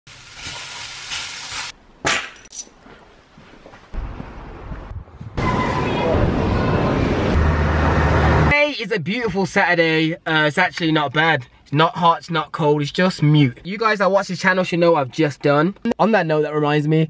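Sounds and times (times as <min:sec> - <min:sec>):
meat sizzling in a frying pan: 0:00.1 - 0:01.7.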